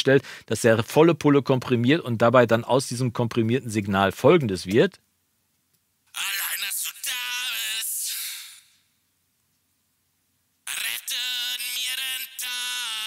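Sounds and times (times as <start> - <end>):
person singing: 6.1 - 8.8, 10.6 - 13.0.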